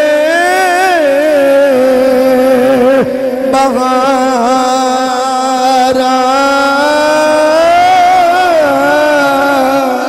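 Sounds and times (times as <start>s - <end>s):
man chanting long note: 0.0s - 10.0s.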